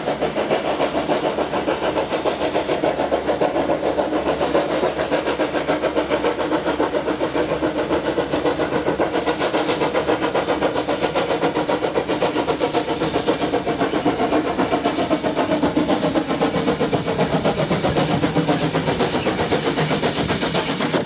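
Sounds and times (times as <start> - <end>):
steam locomotive chuffing: 0.0 - 21.0.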